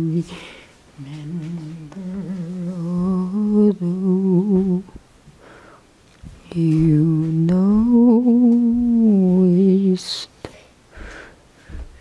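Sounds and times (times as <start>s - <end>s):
person humming: 0.0s - 5.0s, 6.5s - 10.3s.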